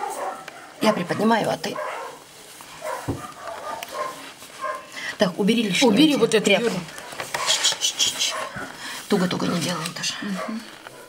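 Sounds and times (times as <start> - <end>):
bandage scratchy rustles: 2.4 - 4.9.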